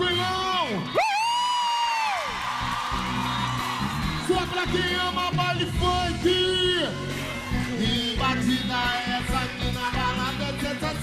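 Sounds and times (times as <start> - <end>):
crowd noise: 0.0 - 11.0
person whooping into microphone: 0.8 - 4.6.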